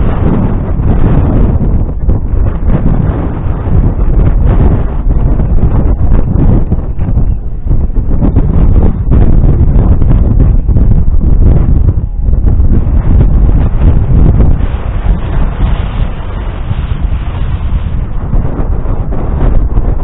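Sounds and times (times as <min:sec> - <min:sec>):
strong wind buffeting microphone: 0:00.0 - 0:20.0.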